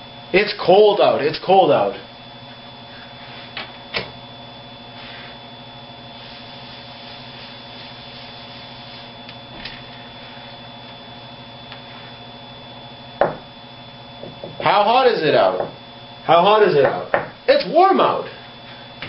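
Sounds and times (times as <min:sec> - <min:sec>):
steady electrical hum: 0:00.0 - 0:19.0.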